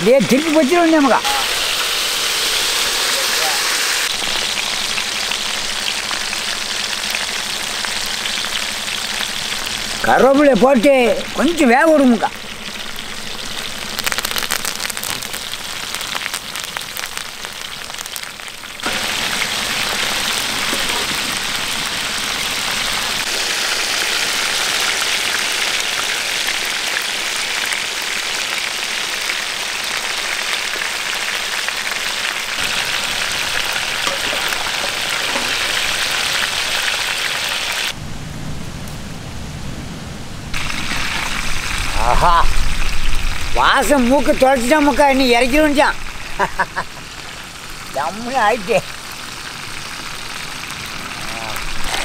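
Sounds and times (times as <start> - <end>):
fish sizzling in hot oil: 0.0 - 38.0, 40.5 - 52.0
leaves crackling in oil: 0.0 - 38.0, 40.5 - 52.0.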